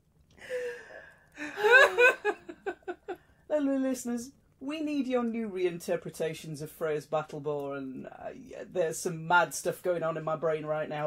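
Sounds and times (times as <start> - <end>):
woman laughing: 1.4 - 3.2.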